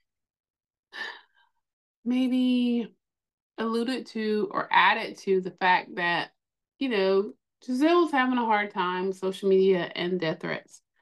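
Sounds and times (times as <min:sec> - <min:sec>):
woman speaking: 0:02.1 - 0:02.9, 0:03.6 - 0:10.8.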